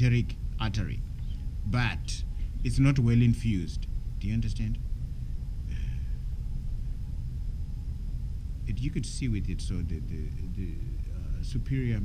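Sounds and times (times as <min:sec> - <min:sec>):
faint hiss: 0:00.0 - 0:12.0
low room rumble: 0:00.0 - 0:12.0.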